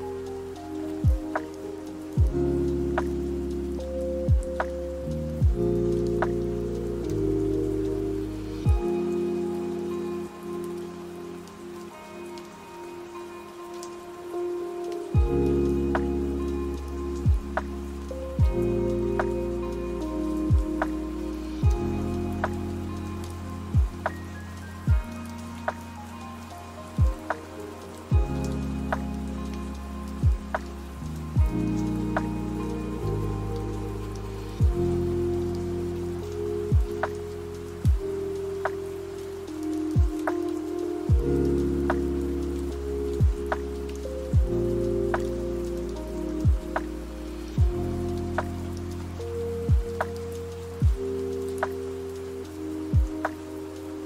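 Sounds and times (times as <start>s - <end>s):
rain: 0.0s - 54.0s
lofi hip-hop track: 0.1s - 54.0s
kick drum: 1.0s - 1.2s, 2.2s - 2.4s, 4.3s - 4.6s, 5.4s - 5.7s, 8.7s - 8.9s, 15.2s - 15.4s, 17.3s - 17.5s, 18.4s - 18.6s, 20.5s - 20.7s, 21.6s - 21.8s, 23.8s - 24.0s, 24.9s - 25.1s, 27.0s - 27.2s, 28.1s - 28.3s, 30.2s - 30.5s, 31.4s - 31.6s, 34.6s - 34.8s, 36.7s - 36.9s, 37.8s - 38.0s, 40.0s - 40.2s, 41.1s - 41.3s, 43.2s - 43.4s, 44.4s - 44.6s, 46.4s - 46.6s, 47.6s - 47.8s, 49.7s - 49.9s, 50.8s - 51.0s, 52.9s - 53.2s
deep bass line: 2.2s - 9.0s, 15.2s - 24.2s, 28.1s - 38.2s, 41.1s - 51.2s.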